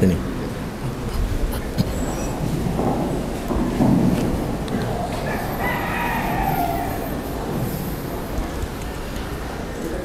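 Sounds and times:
low room hum: 0.0 - 10.0
rooster crowing: 5.1 - 7.3.

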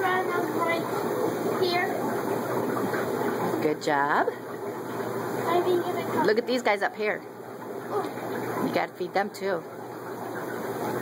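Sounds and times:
aquarium filter water rushing: 0.0 - 11.0.

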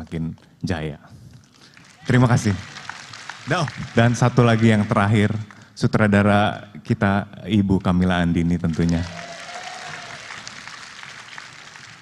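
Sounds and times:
audience applauding: 1.5 - 5.7, 7.8 - 12.0.

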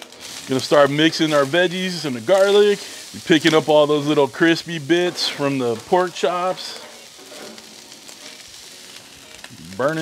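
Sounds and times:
rice sizzling on griddle: 0.0 - 10.0
metal spatula scraping: 0.1 - 9.1.

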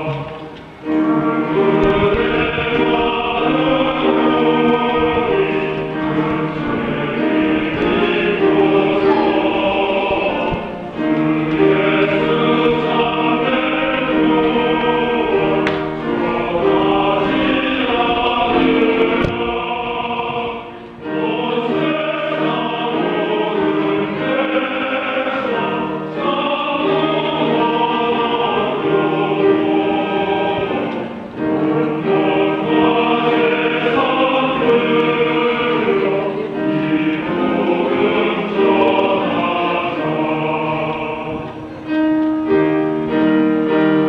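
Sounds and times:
men's choir singing a hymn: 0.0 - 44.0.

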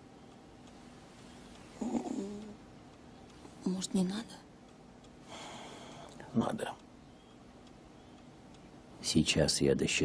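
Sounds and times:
woman murmuring: 1.8 - 2.6.

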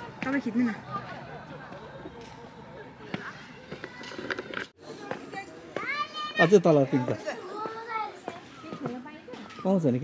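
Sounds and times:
children playing voices: 3.0 - 9.8
children's high-pitched calls: 5.4 - 6.5.

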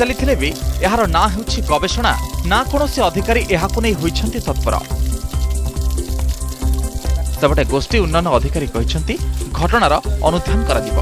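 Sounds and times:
background music with low notes: 0.0 - 11.0
water gushing and splashing: 0.0 - 11.0.

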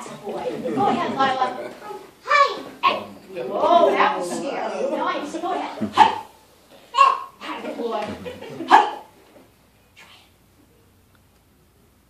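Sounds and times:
children chattering: 0.0 - 9.1
children shouting hey: 6.9 - 7.4.

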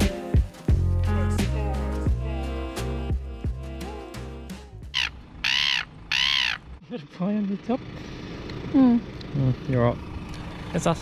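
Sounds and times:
bird harsh calls: 4.8 - 6.8.

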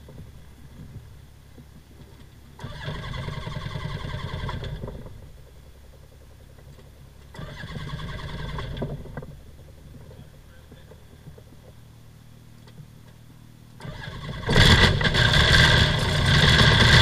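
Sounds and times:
engine cranked by starter: 2.0 - 11.6, 13.8 - 17.0.

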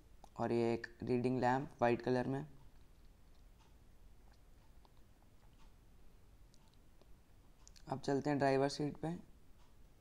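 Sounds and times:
man speaking: 0.4 - 2.6, 7.8 - 9.3.

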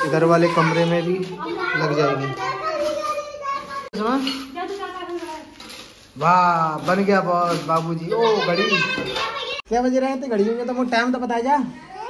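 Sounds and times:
child's wordless drawn-out voice: 0.4 - 4.0, 8.1 - 9.7, 11.8 - 12.0.

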